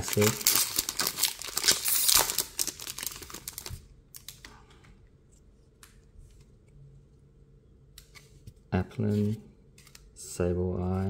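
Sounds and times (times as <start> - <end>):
foil wrapper crinkling and tearing: 0.0 - 4.4.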